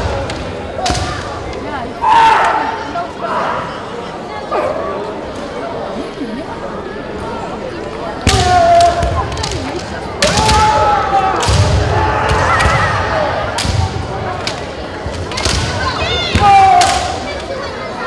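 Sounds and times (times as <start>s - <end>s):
fencers shouting long cries: 10.2s - 13.5s.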